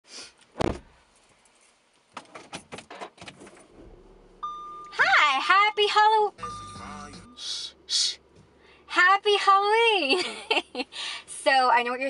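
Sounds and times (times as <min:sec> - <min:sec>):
dull thump in car: 0:00.6 - 0:01.0, 0:02.5 - 0:04.9.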